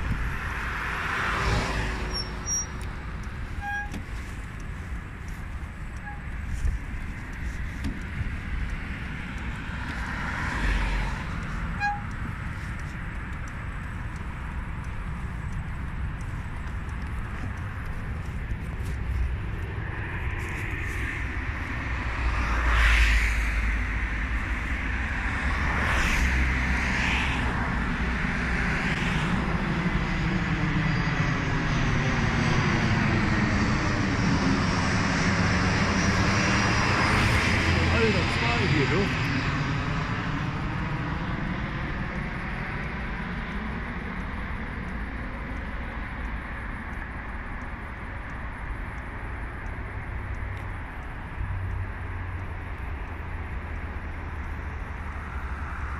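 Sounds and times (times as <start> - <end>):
airplane flying over: 0.0 - 55.9.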